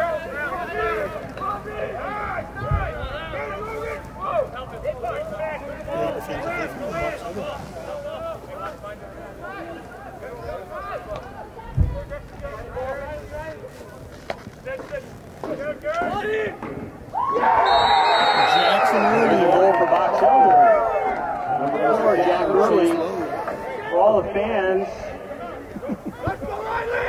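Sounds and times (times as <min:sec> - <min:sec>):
crowd cheering and shouting: 0:00.0 - 0:04.6, 0:16.1 - 0:27.0
spectators chattering: 0:00.0 - 0:27.0
high whistle tone: 0:17.6 - 0:18.8.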